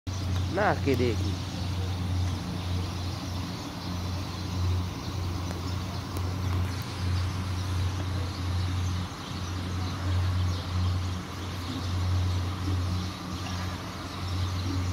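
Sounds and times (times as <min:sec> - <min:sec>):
motor humming: 0:00.1 - 0:14.9.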